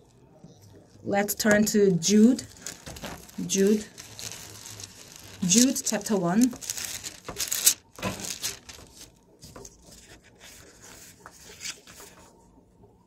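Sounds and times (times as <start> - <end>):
pages rustling: 1.5 - 12.4.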